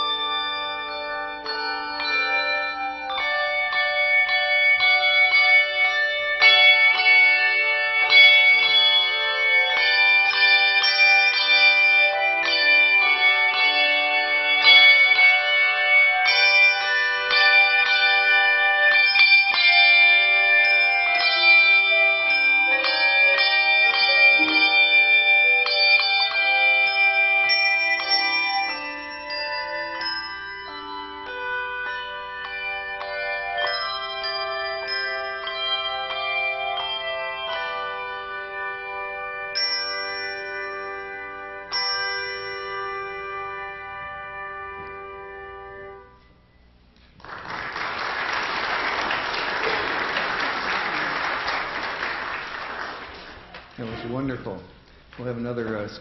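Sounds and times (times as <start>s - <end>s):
handbell choir playing: 0.0s - 46.2s, 47.7s - 54.3s.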